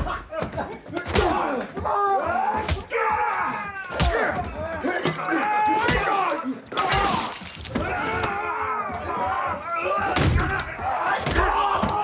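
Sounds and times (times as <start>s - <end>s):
men grunting and groaning: 0.0s - 12.0s.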